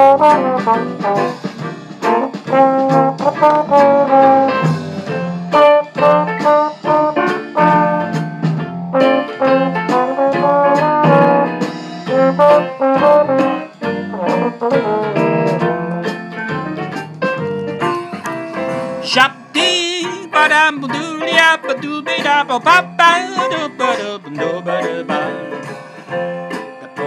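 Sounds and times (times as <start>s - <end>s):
valve trombone playing jazz: 0.0s - 16.4s, 19.0s - 25.6s
piano accompaniment: 0.0s - 27.0s.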